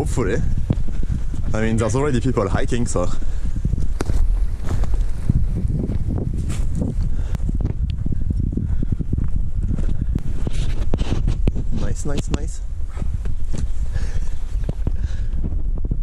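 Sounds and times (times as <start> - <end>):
low microphone rumble: 0.0 - 16.0
footsteps on forest trail: 0.4 - 11.9, 12.9 - 15.3.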